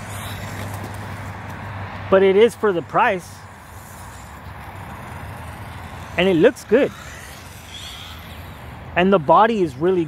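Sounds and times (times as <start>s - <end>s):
distant road traffic: 0.0s - 10.0s.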